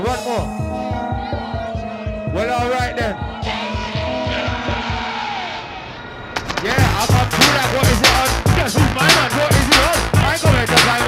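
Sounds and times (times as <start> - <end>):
electronic beat: 0.0 - 5.4, 6.4 - 11.0.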